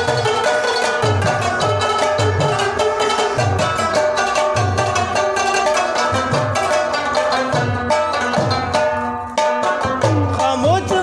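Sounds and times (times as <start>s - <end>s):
plucked lutes fast folk tune: 0.0s - 11.0s.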